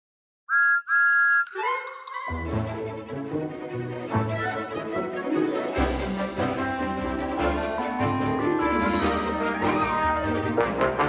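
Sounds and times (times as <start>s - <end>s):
steam engine whistle blowing: 0.5s - 1.6s
music: 1.6s - 11.0s.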